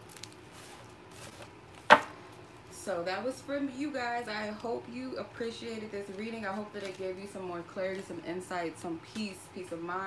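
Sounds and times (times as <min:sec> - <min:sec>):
sharp knock on table: 0:01.9 - 0:02.1.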